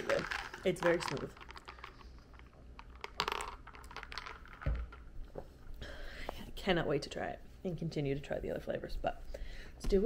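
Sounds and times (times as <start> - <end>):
jar and straw clicks: 0.0 - 5.0.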